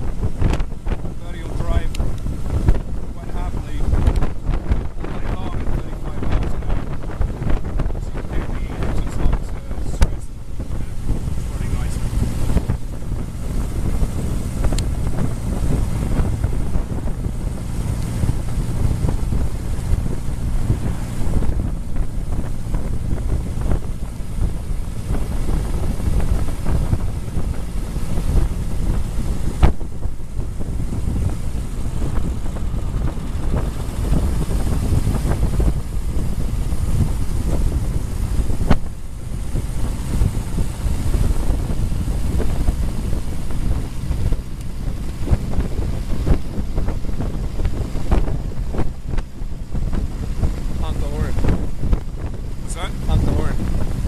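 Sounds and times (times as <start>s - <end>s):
car engine running: 0.0s - 54.0s
wind buffeting microphone: 0.0s - 54.0s.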